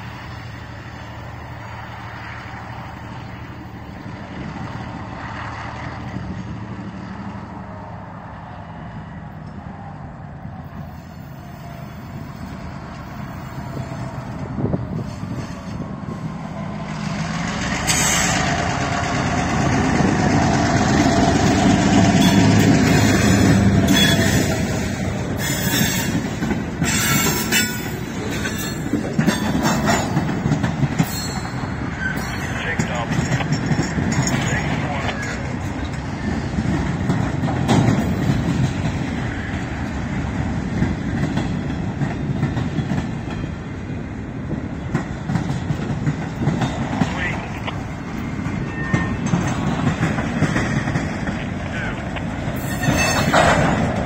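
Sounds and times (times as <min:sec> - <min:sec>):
diesel locomotive engine running: 0:00.0 - 0:54.0
train wheels clicking over rail joints: 0:10.8 - 0:54.0
wheel squeal: 0:22.2 - 0:24.7, 0:25.4 - 0:26.2, 0:31.0 - 0:32.6, 0:52.6 - 0:53.6.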